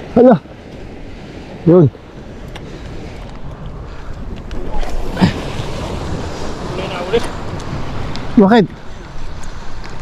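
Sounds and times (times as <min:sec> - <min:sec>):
wind rumbling on microphone: 0:00.0 - 0:10.0
faint clicks: 0:02.4 - 0:04.6.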